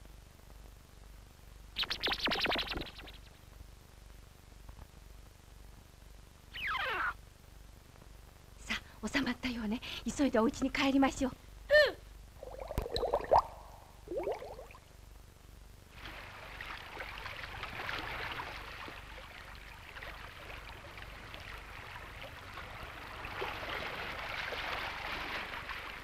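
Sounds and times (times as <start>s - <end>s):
rushing water: 16.0s - 26.0s.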